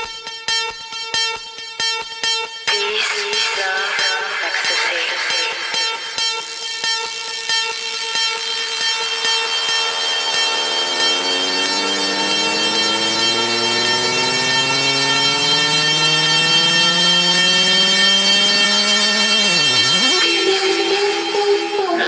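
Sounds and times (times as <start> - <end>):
electronic dance beat: 2.7 - 22.0
buzzy synth tone sliding in pitch: 5.8 - 22.0.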